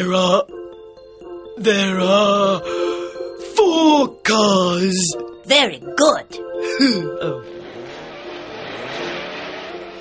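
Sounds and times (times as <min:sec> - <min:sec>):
soft background music: 0:00.0 - 0:10.0
cartoon cars rushing off: 0:07.5 - 0:10.0.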